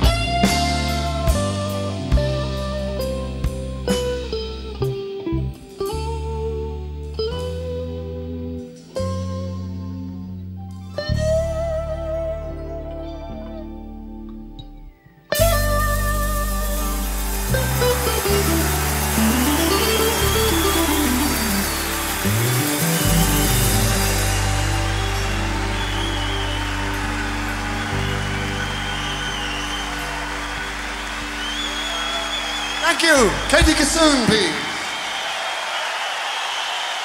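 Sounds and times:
live band playing rock ballad: 0:00.0 - 0:14.4, 0:15.3 - 0:34.0
crowd cheering: 0:16.2 - 0:37.0.

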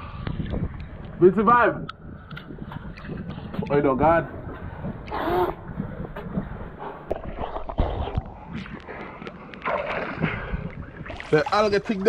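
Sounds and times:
seawater lapping and sloshing: 0:06.4 - 0:12.0
small splashes and knocks: 0:07.1 - 0:12.0.

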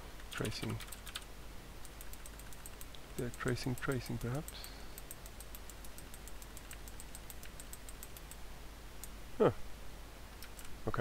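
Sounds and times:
computer keyboard key clicks: 0:01.9 - 0:08.4, 0:10.4 - 0:10.7.

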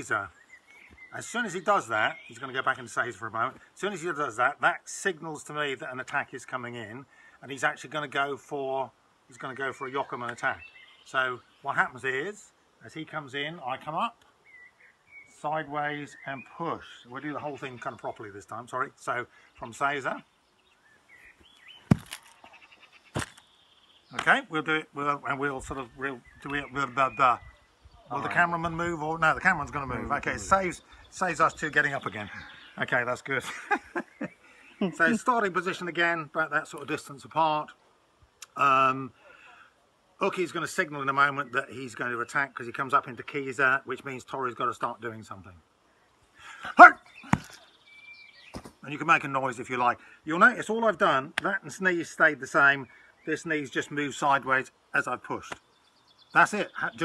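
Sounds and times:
high bird chirp: 0:00.3 - 0:02.5, 0:33.6 - 0:35.2, 0:46.8 - 0:48.8
light scuffing clicks: 0:21.4 - 0:22.5, 0:23.2 - 0:23.5, 0:48.5 - 0:48.8
sharp thump: 0:21.9 - 0:22.2, 0:47.3 - 0:47.6.

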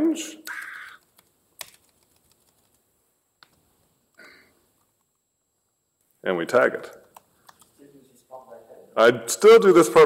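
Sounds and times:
faint laptop keystrokes: 0:00.5 - 0:02.8, 0:03.4 - 0:03.7, 0:06.9 - 0:07.8.

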